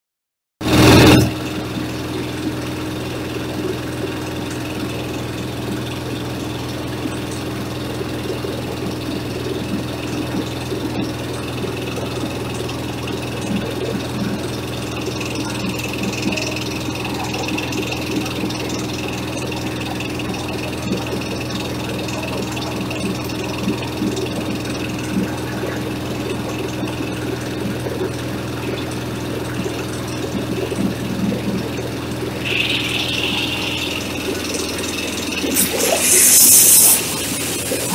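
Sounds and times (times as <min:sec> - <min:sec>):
diesel engine running: 0:00.6 - 0:37.9.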